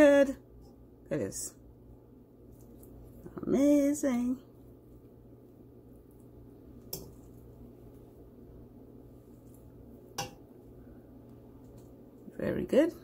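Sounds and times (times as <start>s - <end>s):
faint steady hum: 0.0s - 13.0s
metal fork clinking on pot: 10.2s - 10.4s.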